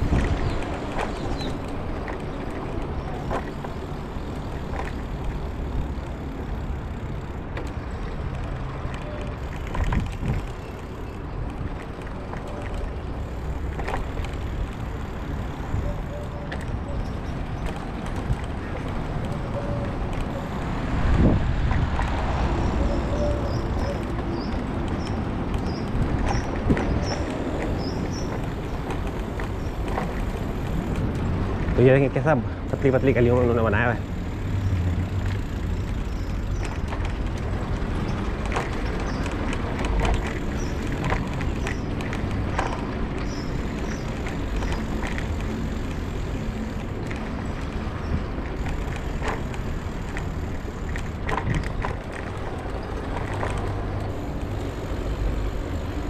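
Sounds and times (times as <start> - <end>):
bicycle tyres on paving stones: 0.0 - 56.0
bike knocks and rattles: 0.0 - 56.0.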